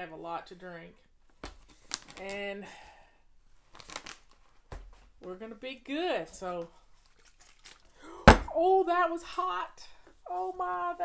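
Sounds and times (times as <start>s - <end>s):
tea pouch crinkling and rustling: 1.4s - 2.4s, 3.5s - 4.6s, 6.9s - 8.0s.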